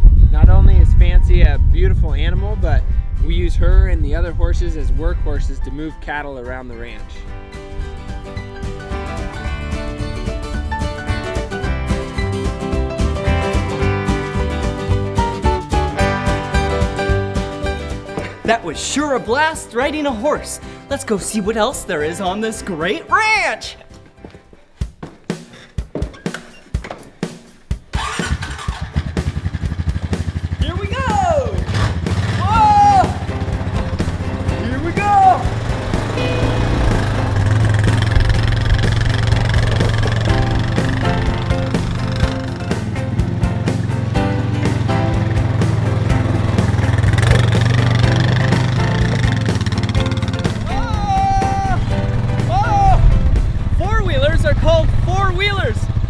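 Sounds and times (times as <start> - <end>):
background music: 0.3 - 56.0
quad bike engine running: 27.9 - 56.0
person whooping: 30.8 - 31.6, 32.4 - 33.3, 50.7 - 51.9, 52.5 - 53.1.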